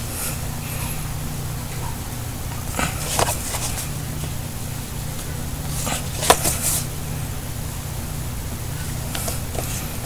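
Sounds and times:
steady low hum: 0:00.0 - 0:10.0
plastic case rustling and clicking: 0:03.0 - 0:03.8, 0:05.8 - 0:06.8.

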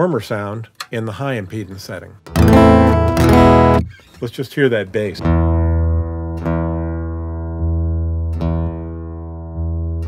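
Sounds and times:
acoustic guitar bass note ringing: 0:02.3 - 0:04.0.

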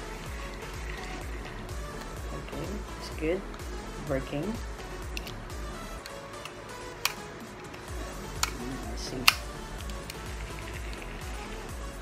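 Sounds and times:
background music: 0:00.0 - 0:12.0
fishing reel clicks: 0:07.8 - 0:11.7.

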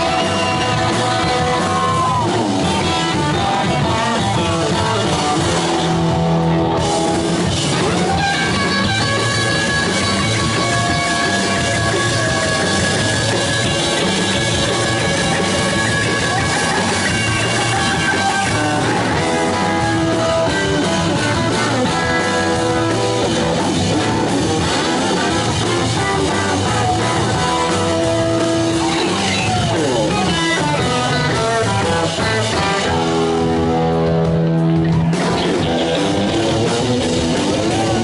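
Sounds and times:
drum kit: 0:00.0 - 0:38.0
electric guitar: 0:00.0 - 0:38.0.

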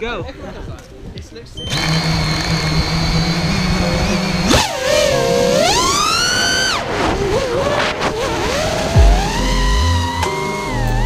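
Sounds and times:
drone motors whining: 0:01.6 - 0:11.0
background music with heavy bass: 0:08.4 - 0:11.0.

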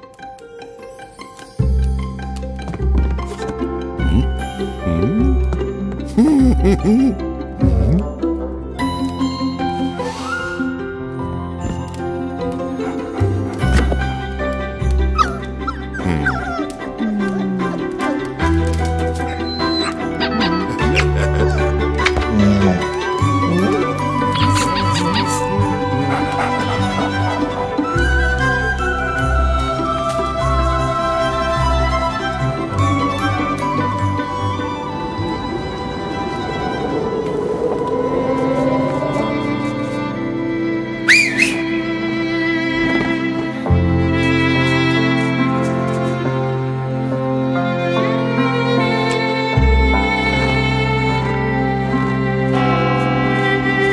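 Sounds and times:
background music: 0:00.0 - 0:53.9
puppy yipping and whimpering: 0:15.2 - 0:16.7, 0:19.2 - 0:21.0
man whistling through fingers: 0:41.1 - 0:41.7.

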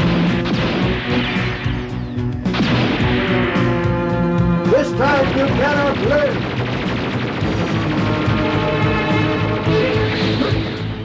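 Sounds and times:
cartoon energy weapon fire: 0:00.0 - 0:01.8, 0:02.5 - 0:03.4, 0:05.2 - 0:10.8.

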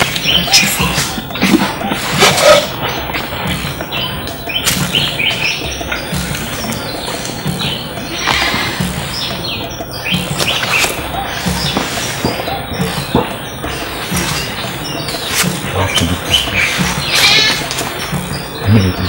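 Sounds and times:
birds chirping: 0:00.0 - 0:19.0
film music with low thuds: 0:00.0 - 0:19.0.

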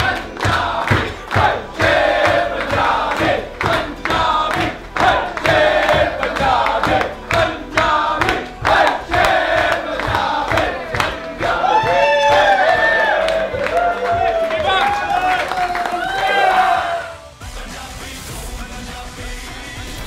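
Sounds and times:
men singing together: 0:00.0 - 0:13.6, 0:16.6 - 0:20.0
people clapping in time: 0:00.0 - 0:17.0.

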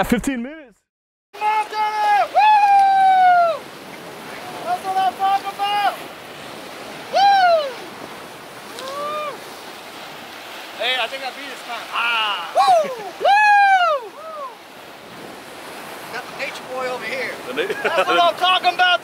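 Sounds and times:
surf washing against rocks: 0:01.4 - 0:19.0.

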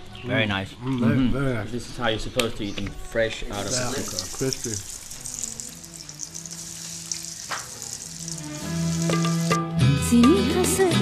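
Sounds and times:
soft music: 0:02.0 - 0:11.0
fritters sizzling in hot oil: 0:03.7 - 0:09.6.

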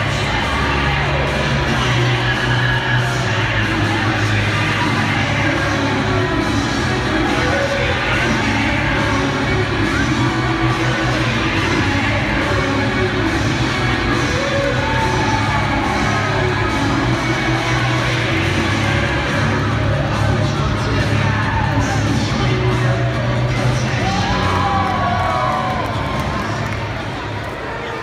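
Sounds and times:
entrance music over sound system: 0:00.0 - 0:27.6
crowd cheering and shouting: 0:00.0 - 0:28.0.

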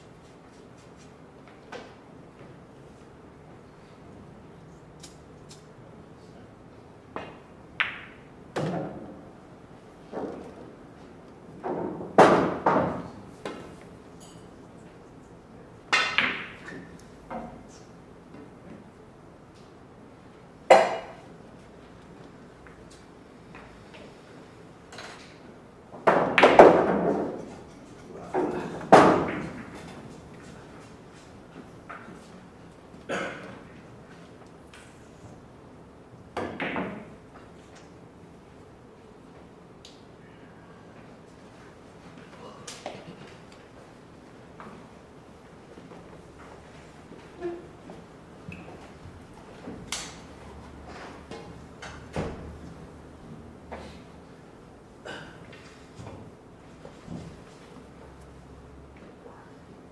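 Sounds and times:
pool balls clacking: 0:07.1 - 0:09.2, 0:11.6 - 0:13.8, 0:15.9 - 0:17.7, 0:24.9 - 0:30.5, 0:36.3 - 0:37.4.

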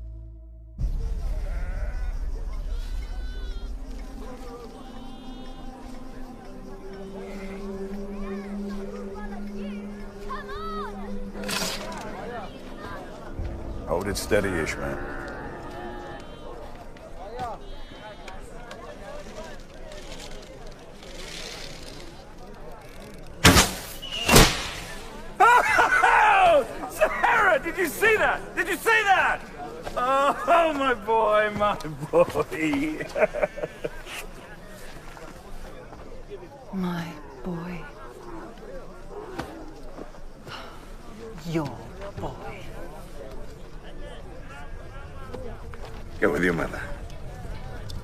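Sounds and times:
faint voices murmuring: 0:00.9 - 0:48.0
livestock bleating: 0:01.4 - 0:02.1
low background noise: 0:02.1 - 0:48.0
arrow striking target: 0:23.4 - 0:25.0
arrow whistle: 0:23.4 - 0:25.0.

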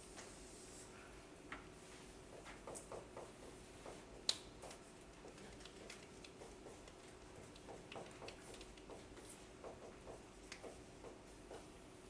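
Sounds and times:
faint steady hum: 0:00.0 - 0:12.0
marker writing on whiteboard: 0:02.3 - 0:11.8.

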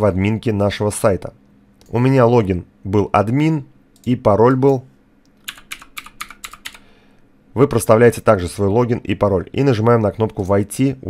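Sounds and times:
computer keyboard typing: 0:05.3 - 0:06.9.

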